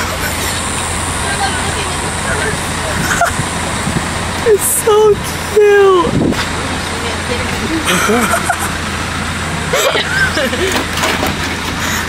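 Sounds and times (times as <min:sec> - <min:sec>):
faint voices talking: 0:00.0 - 0:08.0
road traffic noise: 0:00.0 - 0:12.0.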